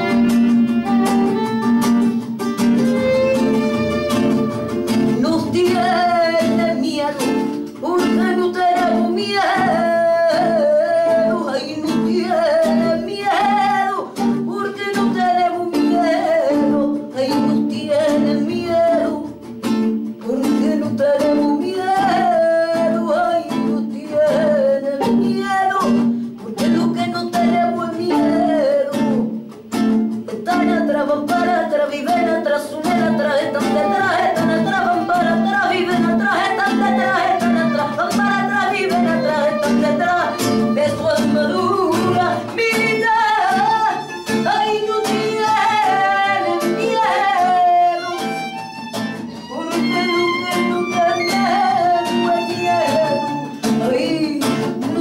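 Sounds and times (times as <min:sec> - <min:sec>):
strummed acoustic guitar: 0:00.0 - 0:55.0
violin: 0:00.0 - 0:55.0
woman singing: 0:04.0 - 0:29.5, 0:30.1 - 0:55.0.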